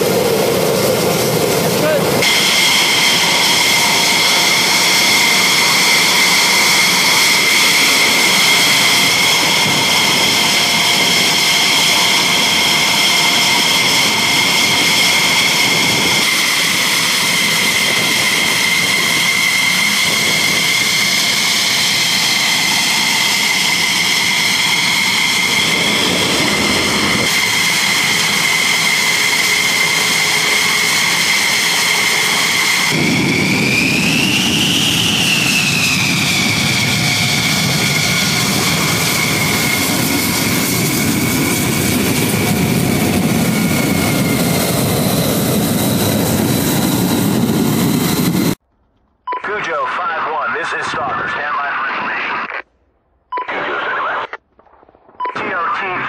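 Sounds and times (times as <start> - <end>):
fighter jet engine whine: 0.0 - 56.0.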